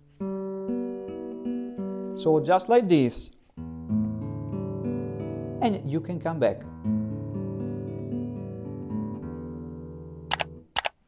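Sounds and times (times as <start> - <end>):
fingerpicked classical guitar: 0.0 - 10.7
sharp clicks: 10.3 - 11.0.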